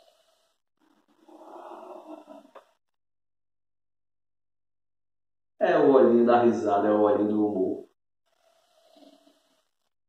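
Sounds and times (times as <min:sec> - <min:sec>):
man breathing in through nose: 0:00.0 - 0:00.6, 0:08.3 - 0:09.8.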